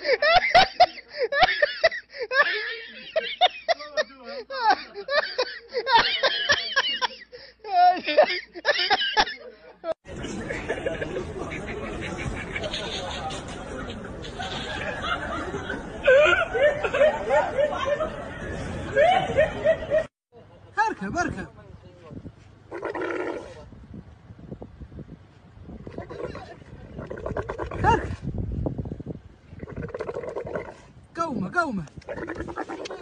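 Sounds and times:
indistinct chatter: 0:10.1 - 0:18.9
camel growling: 0:22.7 - 0:23.7, 0:25.8 - 0:28.3, 0:29.5 - 0:31.0, 0:32.0 - 0:33.0.

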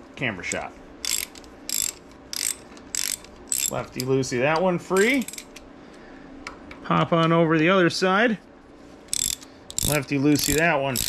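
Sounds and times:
socket ratchet clicking: 0:01.0 - 0:04.1, 0:05.0 - 0:05.6, 0:09.1 - 0:11.0.

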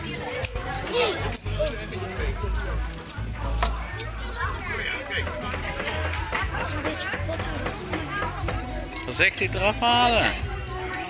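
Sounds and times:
indistinct chatter: 0:00.0 - 0:11.0
music playing: 0:00.0 - 0:11.0.

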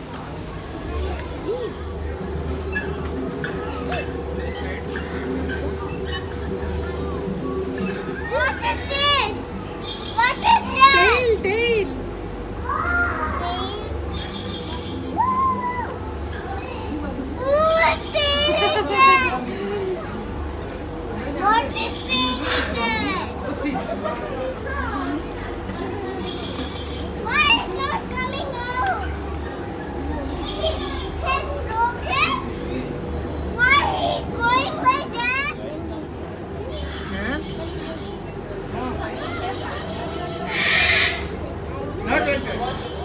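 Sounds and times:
low steady hum: 0:00.0 - 0:40.5
children shouting and chattering: 0:00.0 - 0:43.0
crowd din: 0:00.0 - 0:43.0.

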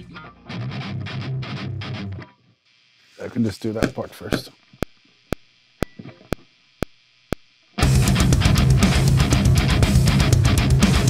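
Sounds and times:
distorted electric guitar riff: 0:00.0 - 0:11.0.

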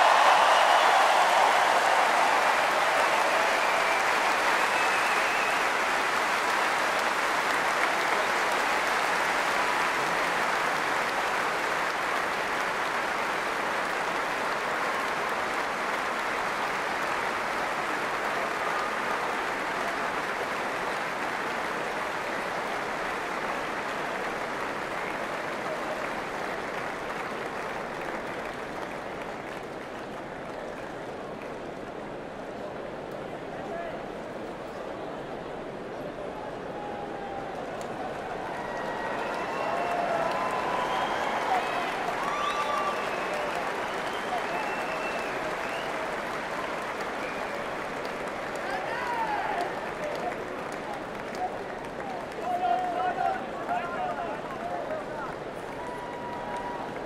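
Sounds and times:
stadium crowd applauding: 0:00.0 - 0:57.0.

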